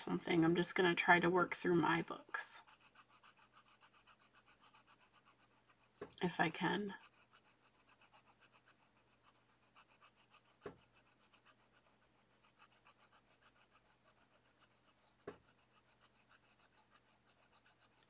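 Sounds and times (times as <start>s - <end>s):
marker scratching on paper: 0.0s - 18.0s.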